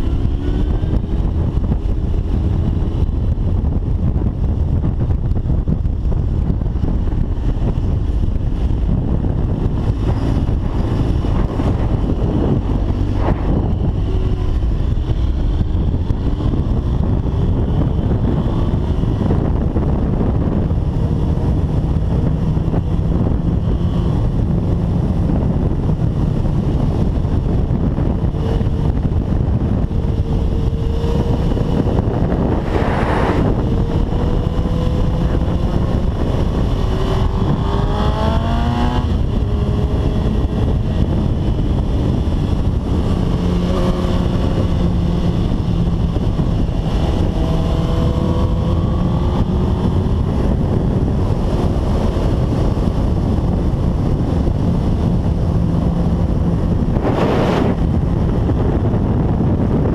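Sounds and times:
motorcycle engine accelerating: 0.0s - 59.9s
wind buffeting microphone: 0.0s - 59.9s.

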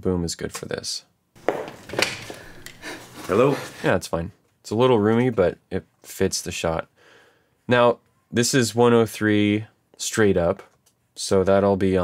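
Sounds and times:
knocks: 1.4s - 2.4s
footsteps in a room: 1.4s - 3.8s
person breathing: 2.2s - 3.9s, 6.9s - 7.7s.

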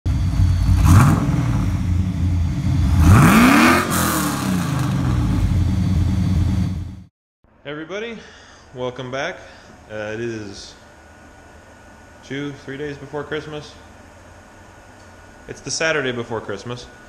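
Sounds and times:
car engine revving: 0.1s - 7.1s.

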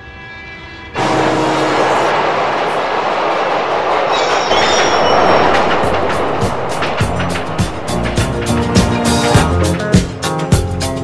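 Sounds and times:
train wheels rushing on track: 1.0s - 11.0s.

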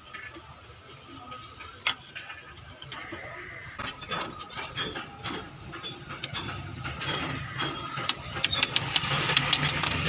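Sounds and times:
engine idling: 3.1s - 10.0s
quick metallic clicks and taps: 3.8s - 10.0s.

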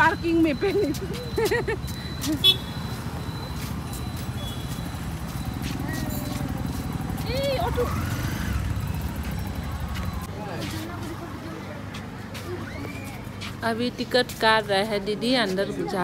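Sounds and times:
low urban rumble: 0.0s - 16.0s
footsteps clicking: 0.7s - 7.3s.

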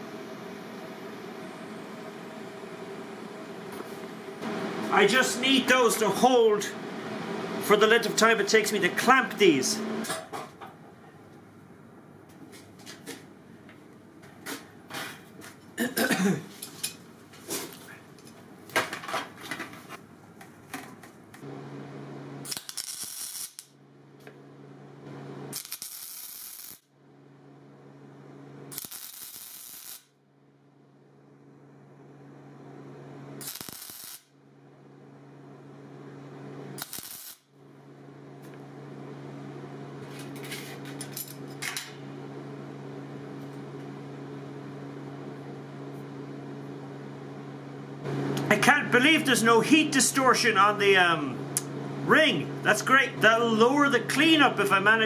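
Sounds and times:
torch humming: 0.0s - 10.4s, 21.4s - 24.4s, 25.2s - 26.9s, 28.7s - 30.2s, 33.4s - 34.4s, 36.6s - 37.5s.

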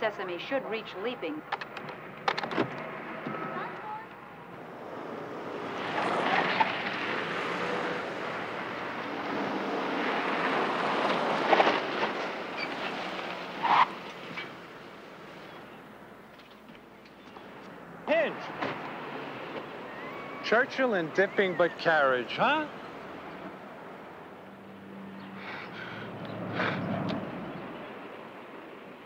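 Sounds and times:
road noise: 0.0s - 29.0s.

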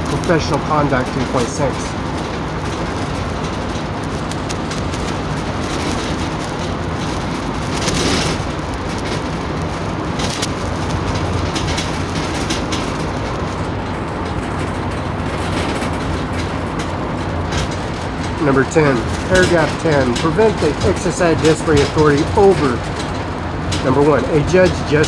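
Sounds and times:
rumbling background noise: 0.0s - 25.0s.

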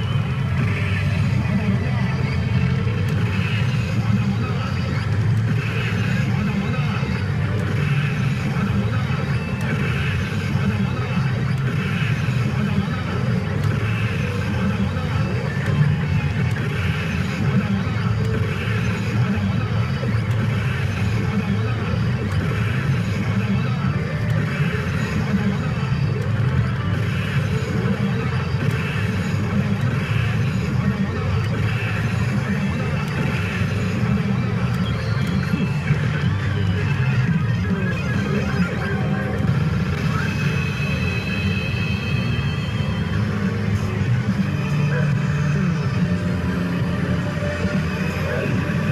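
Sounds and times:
pachinko machine music and voices: 0.0s - 48.9s
pachinko parlour machines din: 0.0s - 48.9s.

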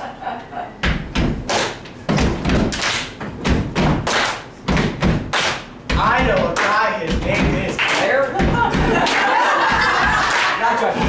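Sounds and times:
deep stomping thumps: 0.8s - 1.5s, 2.1s - 10.2s
sharp claps: 1.2s - 10.9s.

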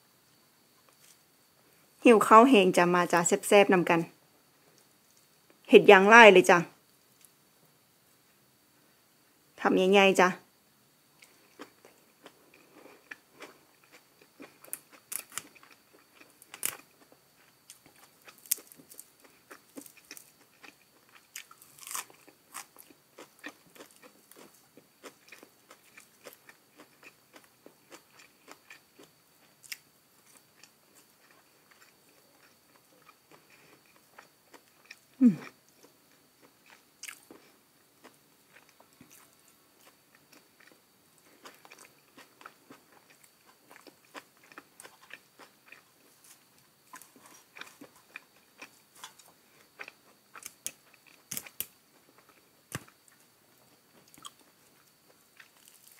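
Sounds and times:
crunching and chewing greens: 11.2s - 55.9s
person humming mmm of enjoyment: 35.2s - 35.6s.

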